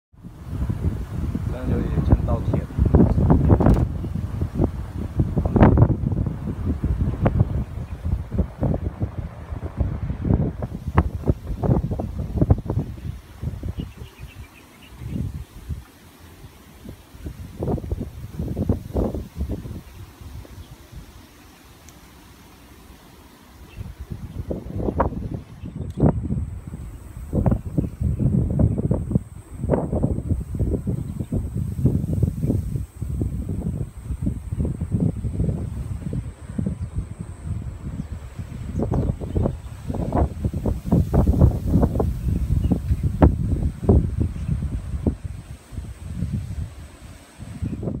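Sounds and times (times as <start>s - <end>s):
wind buffeting microphone: 0.1s - 21.2s, 23.6s - 48.0s.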